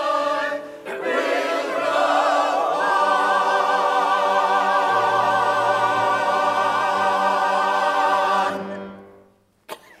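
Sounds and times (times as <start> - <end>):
mixed choir singing: 0.0 - 9.0.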